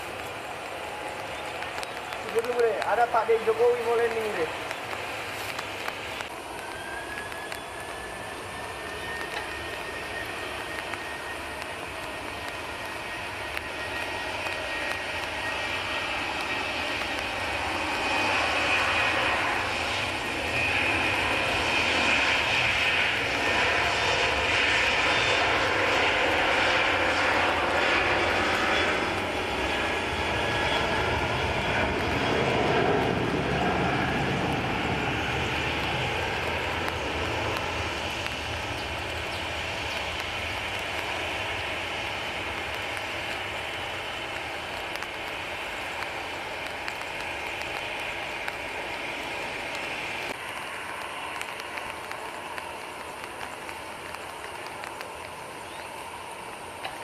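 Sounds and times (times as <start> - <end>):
jet engine roar with fan whine: 0.0 - 57.0.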